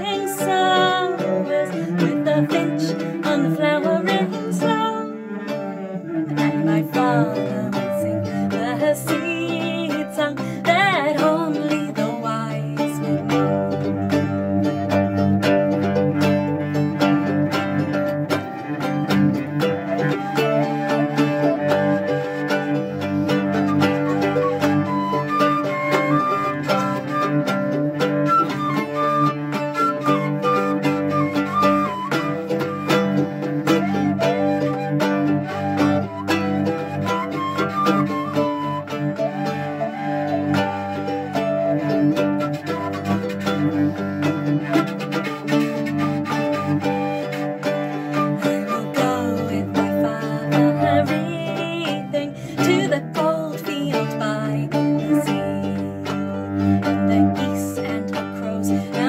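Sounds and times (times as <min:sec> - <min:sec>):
bowed cello low notes: 0:00.0 - 0:59.0
mandolin picking: 0:00.0 - 0:59.0.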